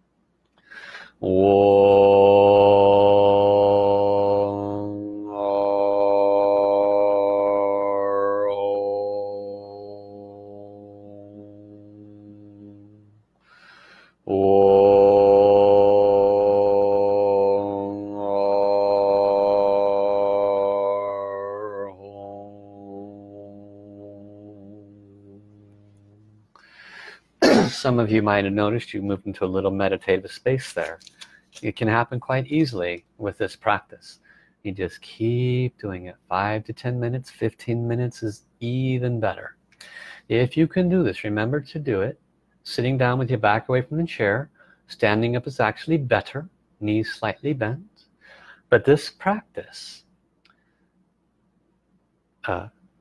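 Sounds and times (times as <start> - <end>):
voice chanting sustained tones: 1.2 - 13.1, 14.3 - 26.4.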